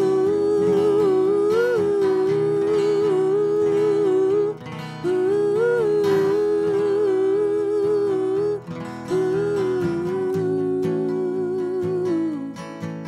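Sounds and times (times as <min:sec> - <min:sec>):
strummed acoustic guitar: 0:00.0 - 0:13.0
wordless vocal harmonies: 0:00.0 - 0:13.0.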